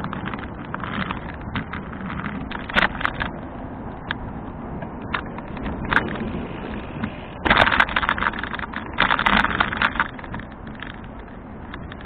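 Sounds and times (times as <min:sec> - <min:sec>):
bicycle rattling: 0:00.0 - 0:12.0
low rumble of tyres: 0:00.0 - 0:12.0.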